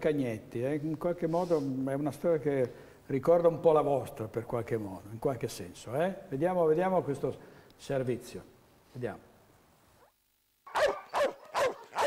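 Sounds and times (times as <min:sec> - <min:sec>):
dog barking: 0:10.7 - 0:12.0.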